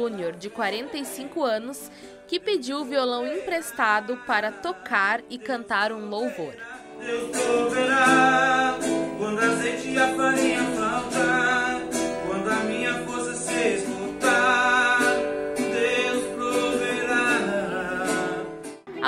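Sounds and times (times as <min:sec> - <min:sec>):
nylon-string acoustic guitar: 0:00.0 - 0:19.0
man singing a hymn: 0:02.9 - 0:18.7.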